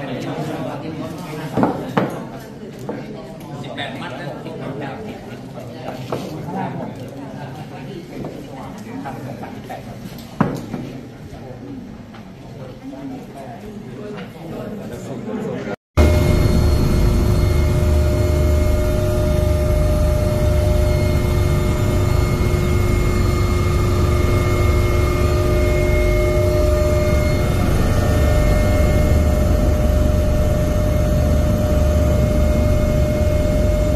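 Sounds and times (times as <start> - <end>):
helicopter engine and rotor rumble: 16.0 - 33.9
high turbine whine: 16.0 - 33.9.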